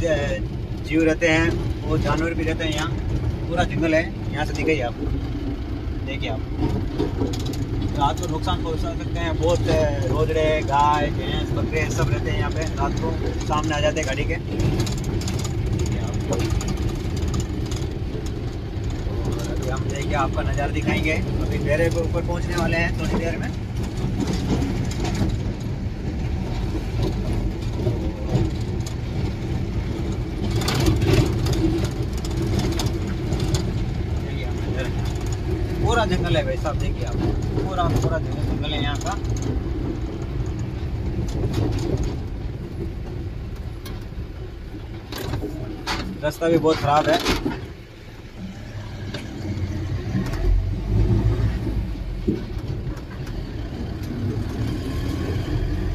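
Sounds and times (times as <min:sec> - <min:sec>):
light clicks and rattles: 0:00.0 - 0:05.2, 0:06.1 - 0:49.5
vehicle engine and road rumble: 0:00.0 - 0:55.9.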